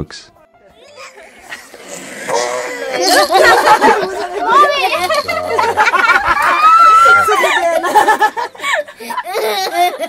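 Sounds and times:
group of people laughing: 0.9s - 10.0s
people talking: 2.3s - 8.5s.

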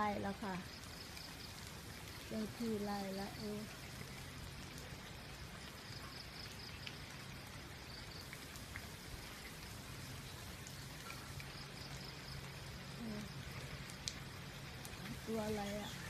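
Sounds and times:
rain falling: 0.0s - 16.0s.

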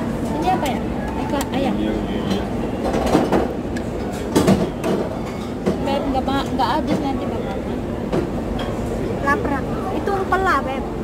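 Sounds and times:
restaurant background noise: 0.0s - 11.0s
clatter of utensils and dishes: 2.2s - 7.2s.

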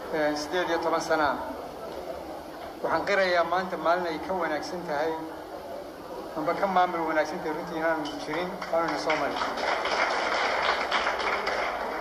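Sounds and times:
audience applauding: 8.3s - 12.0s.

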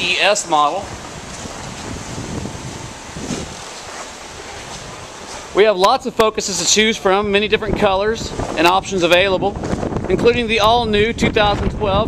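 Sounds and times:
wind noise on microphone: 0.0s - 12.0s.

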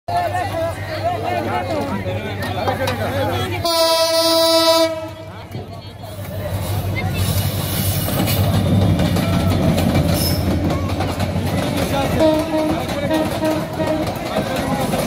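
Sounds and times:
passing train rumble and rail clatter: 0.1s - 15.0s
diesel locomotive horn: 3.6s - 5.4s, 12.1s - 14.4s.

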